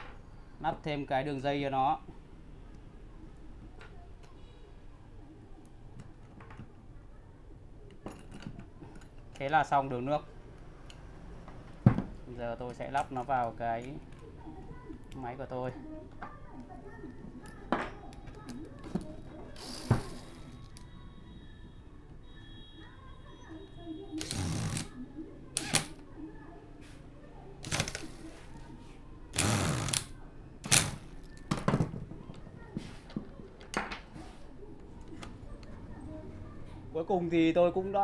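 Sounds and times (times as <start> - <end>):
metal parts clicking and knocking: 7.9 - 9.7.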